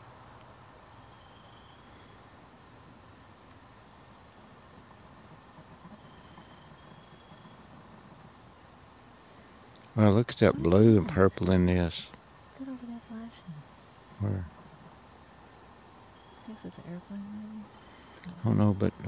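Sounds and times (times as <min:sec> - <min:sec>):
background hiss and hum: 0:00.0 - 0:19.0.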